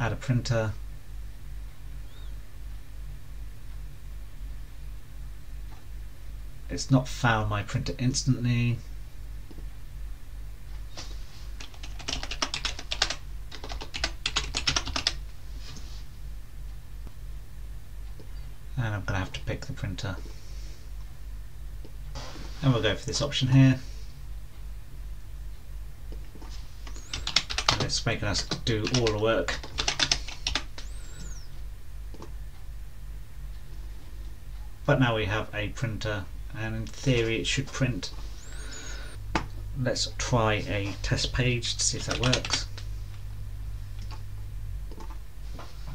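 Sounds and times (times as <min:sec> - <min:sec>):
steady low hum: 0:00.0 - 0:45.9
computer keyboard typing: 0:11.6 - 0:15.2, 0:26.8 - 0:31.4, 0:42.0 - 0:42.8.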